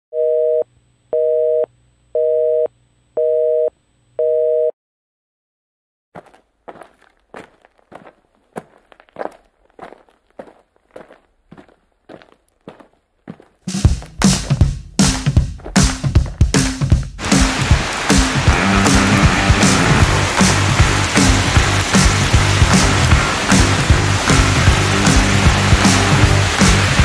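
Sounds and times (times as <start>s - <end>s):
telephone busy signal beeps: 0.1s - 4.7s
footsteps: 6.2s - 26.0s.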